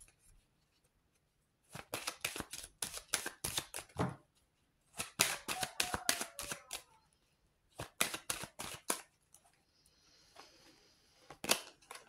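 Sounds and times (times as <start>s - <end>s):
cards being shuffled: 1.7s - 4.1s, 5.0s - 6.9s, 7.8s - 9.1s, 11.3s - 12.0s.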